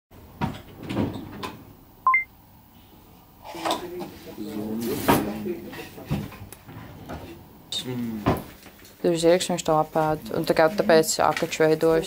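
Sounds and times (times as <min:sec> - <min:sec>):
two-note electronic beep: 0:02.1 - 0:02.3.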